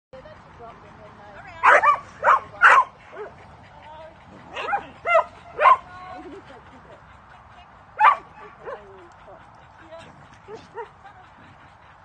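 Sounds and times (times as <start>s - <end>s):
dog barking: 1.6s - 3.3s, 4.5s - 5.8s, 8.0s - 8.8s.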